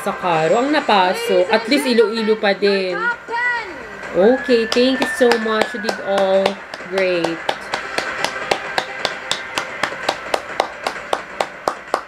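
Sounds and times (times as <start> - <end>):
person clapping hands: 4.6 - 12.0.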